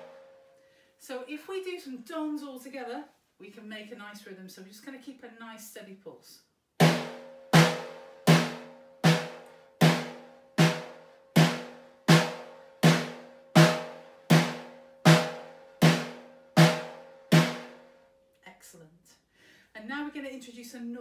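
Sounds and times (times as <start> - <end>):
snare drum strokes: 6.8 - 17.8.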